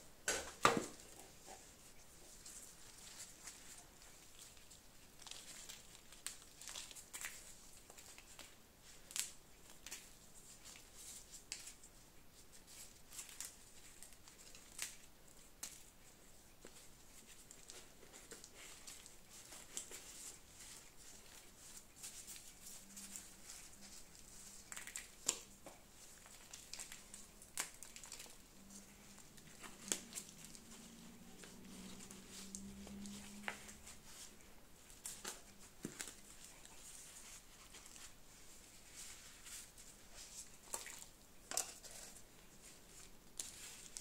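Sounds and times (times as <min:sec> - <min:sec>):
faint crinkling and rustling: 0:00.0 - 0:44.0
small clicks of plastic pots: 0:40.7 - 0:42.2.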